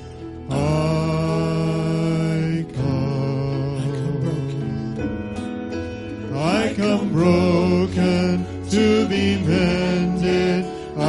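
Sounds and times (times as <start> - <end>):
worship band playing slow song: 0.0 - 11.0
man singing sustained notes: 0.1 - 5.0, 6.2 - 11.0.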